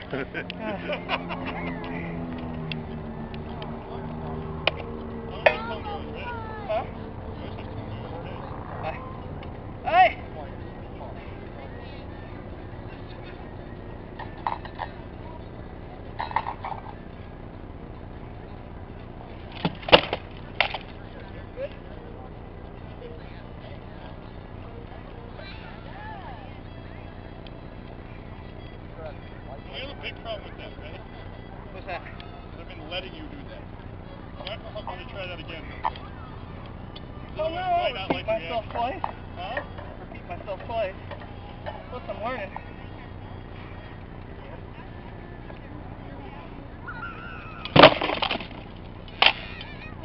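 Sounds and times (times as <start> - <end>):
low engine hum: 0.0 - 50.0.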